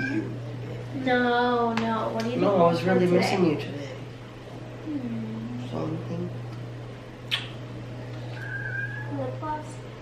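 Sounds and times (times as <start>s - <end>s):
wet kiss smack: 7.2s - 7.6s.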